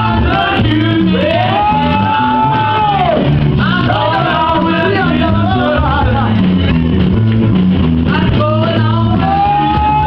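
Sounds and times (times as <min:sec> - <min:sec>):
gospel band playing: 0:00.0 - 0:10.0.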